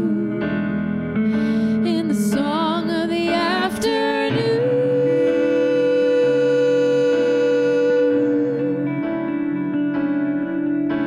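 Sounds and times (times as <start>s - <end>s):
acoustic guitar: 0.0s - 11.0s
keyboard: 0.0s - 11.0s
person singing long note: 3.7s - 9.5s.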